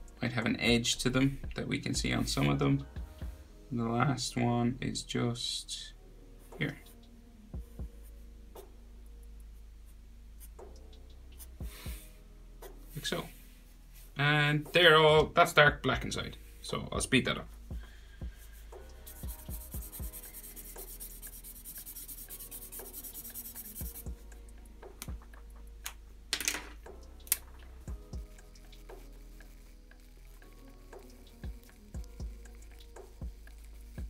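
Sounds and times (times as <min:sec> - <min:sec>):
quiet background music: 0:00.0 - 0:34.0
marker scratching on paper: 0:18.4 - 0:24.2, 0:28.2 - 0:34.0.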